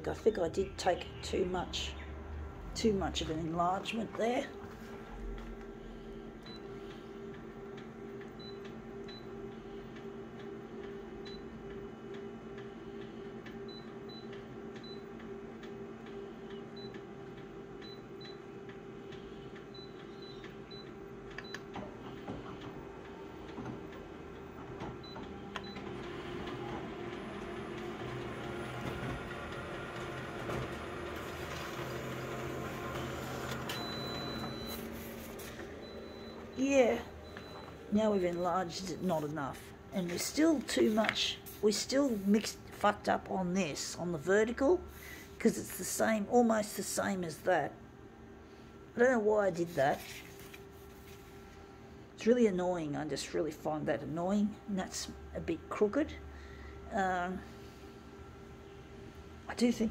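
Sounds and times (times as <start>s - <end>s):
copier mechanical hum: 0.0s - 59.9s.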